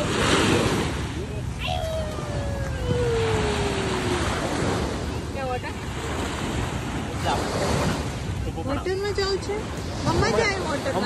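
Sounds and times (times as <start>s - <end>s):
small waves washing on shore: 0.0s - 11.0s
wind buffeting microphone: 0.0s - 11.0s.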